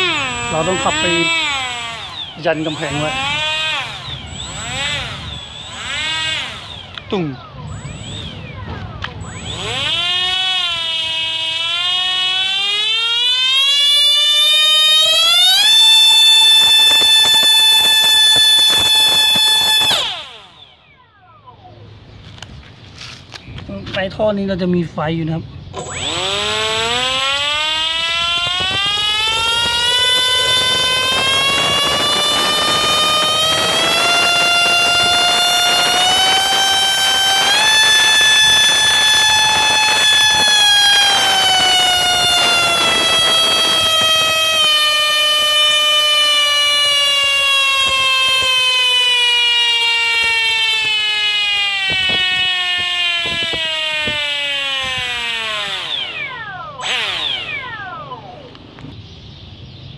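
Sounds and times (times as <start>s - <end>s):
electric ducted fan motor whining: 0.0s - 22.5s, 25.6s - 59.1s.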